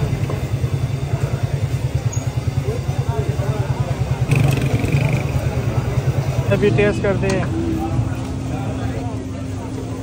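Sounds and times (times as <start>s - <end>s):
background chatter: 0.0s - 10.0s
engine running with low throb: 0.0s - 10.0s.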